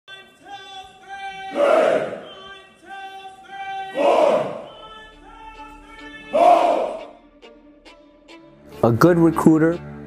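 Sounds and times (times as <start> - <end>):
loud yell: 0.1 - 7.1
group of voices shouting: 0.6 - 7.1.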